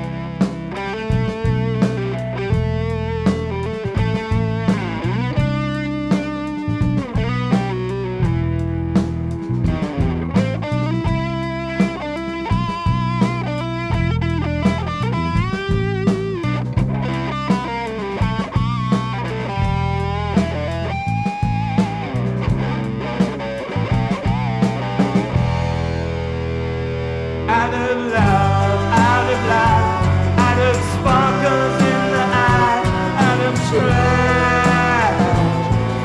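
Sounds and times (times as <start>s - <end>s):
bass and drums: 0.0s - 36.0s
electric guitar lead: 0.0s - 36.0s.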